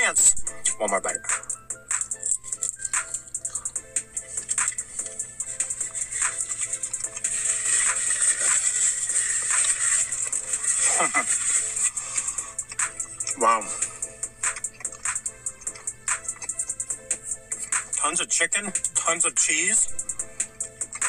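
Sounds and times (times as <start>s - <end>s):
soft background music: 0.0s - 21.0s
crunching taco shell: 2.2s - 16.8s.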